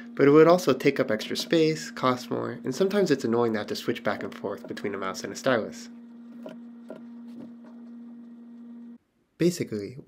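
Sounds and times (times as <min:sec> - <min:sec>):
steady low hum: 0:00.0 - 0:09.0.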